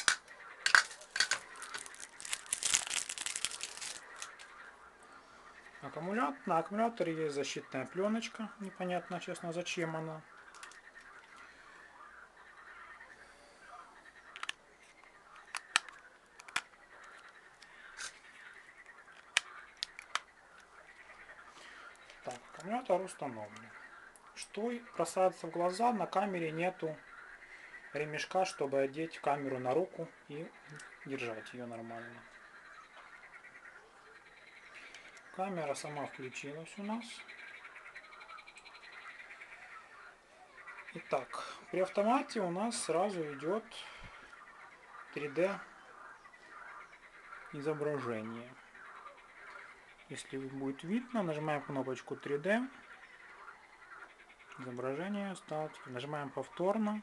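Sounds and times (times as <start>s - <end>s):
plastic clicks and snaps: 0.0s - 4.5s, 10.4s - 11.4s, 14.3s - 18.2s, 18.8s - 20.7s.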